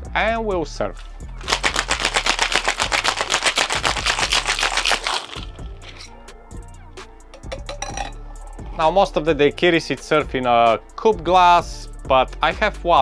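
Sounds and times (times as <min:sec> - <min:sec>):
ice rattling in cocktail shaker: 0:01.4 - 0:06.1.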